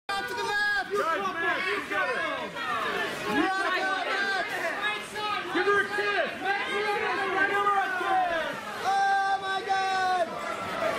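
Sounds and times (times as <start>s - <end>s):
babble of voices: 0.1s - 10.9s.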